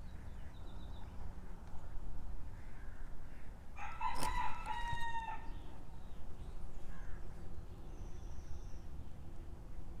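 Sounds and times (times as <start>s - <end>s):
rooster crowing: 3.8s - 5.5s.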